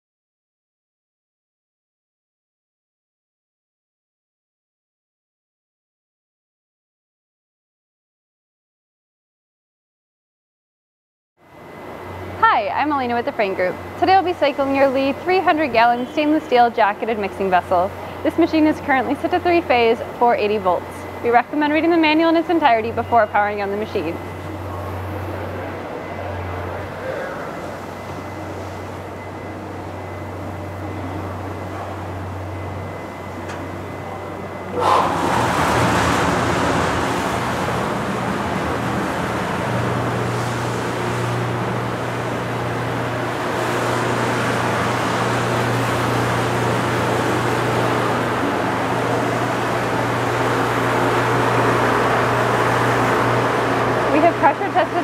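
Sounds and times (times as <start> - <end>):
steady low hum: 11.4 - 55.0
agitator motor humming: 11.5 - 55.0
water churning and splashing: 34.8 - 53.6.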